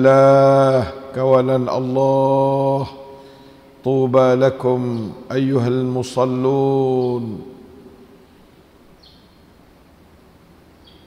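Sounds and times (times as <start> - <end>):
man chanting: 0.0 - 3.2, 3.8 - 8.0
low room noise: 0.0 - 11.0.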